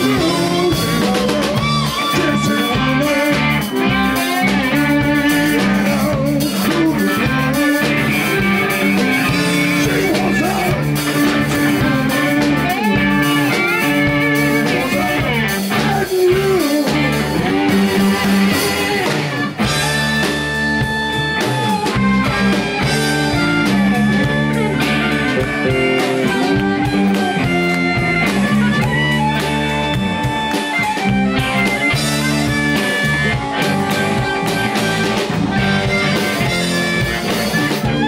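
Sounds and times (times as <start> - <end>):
blues-rock band playing: 0.0 - 38.0
gliding guitar notes: 0.0 - 38.0.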